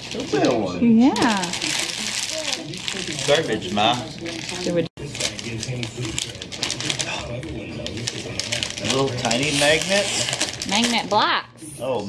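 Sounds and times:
wrapping paper crinkling and tearing: 0.0 - 11.4.

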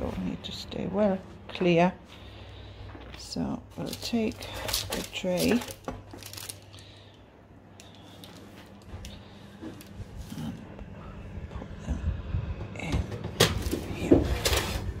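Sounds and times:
metal tray scraping and clattering: 13.3 - 15.0.

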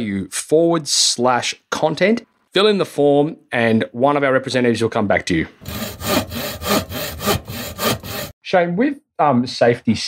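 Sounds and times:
handsaw cutting wood: 5.6 - 8.4.

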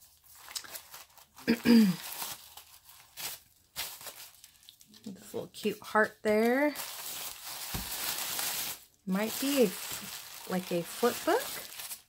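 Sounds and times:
tissue paper rustling: 0.0 - 4.9, 6.4 - 12.0.

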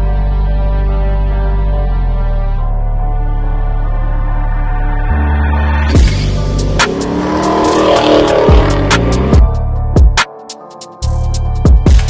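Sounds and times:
intro music with steady beat: 3.9 - 12.0
car engine revving: 5.9 - 9.6.

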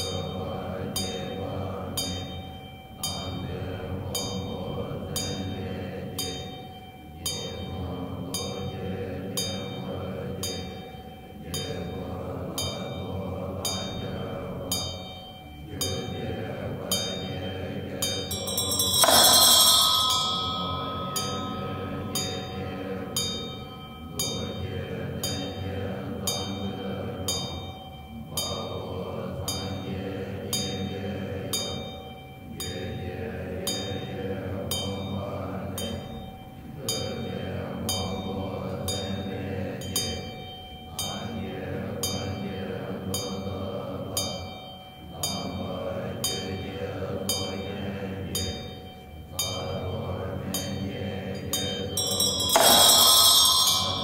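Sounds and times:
monks chanting in unison: 0.0 - 54.0
sharp percussion strikes: 0.0 - 54.0.

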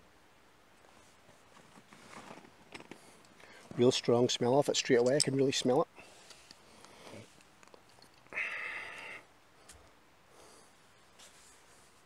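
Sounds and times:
rustling and handling noise: 0.7 - 8.3, 10.6 - 12.0.

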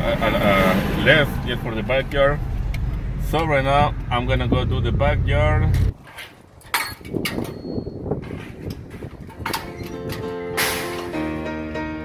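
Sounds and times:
metal ramp gate rattling and clanking: 6.0 - 11.3
piano background music: 9.6 - 12.0.

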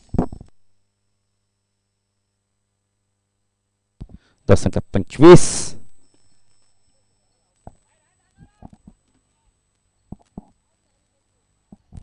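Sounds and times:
faint high-pitched tone: 4.5 - 11.8.

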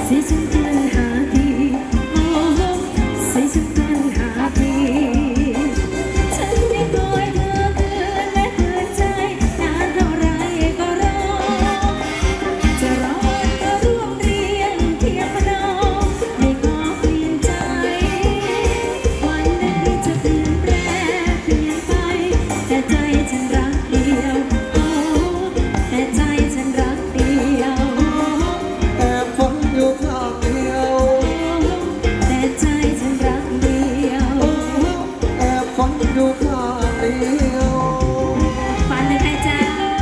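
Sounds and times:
live band dance music: 0.0 - 40.0
person singing wavering melody: 0.0 - 40.0
steady drum beat: 0.0 - 40.0.

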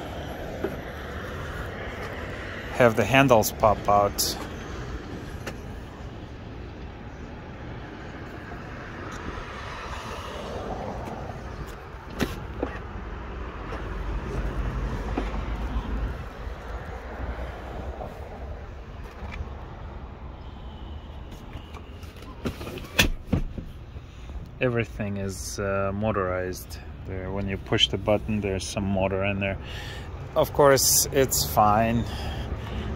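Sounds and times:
outdoor background noise: 0.0 - 32.9
car door clicks and knocks: 22.8 - 23.7.

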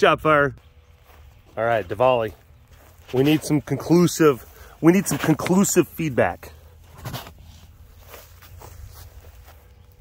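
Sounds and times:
animal footsteps scuffing dry grass: 0.6 - 6.2, 6.9 - 10.0.

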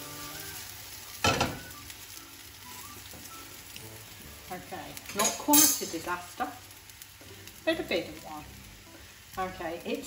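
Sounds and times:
batter sizzling in a frying pan: 0.0 - 10.0.

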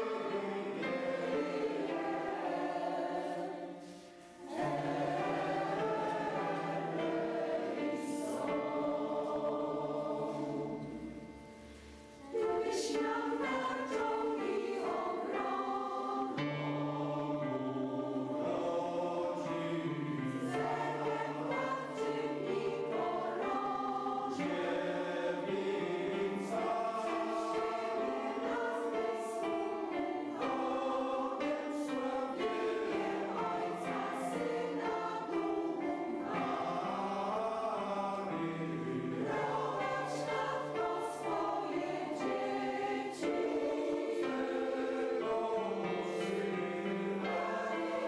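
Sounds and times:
mixed choir singing: 0.0 - 48.0.

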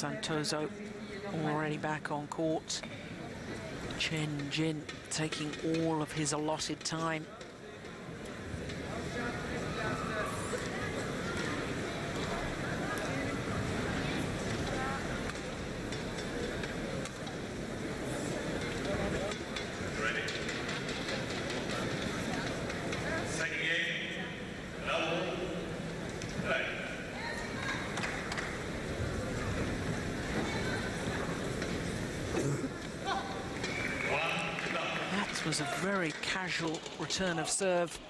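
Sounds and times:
crowd murmuring: 7.4 - 38.0.

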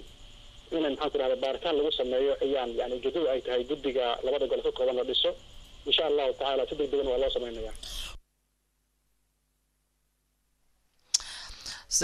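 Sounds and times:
person talking: 0.7 - 8.2.

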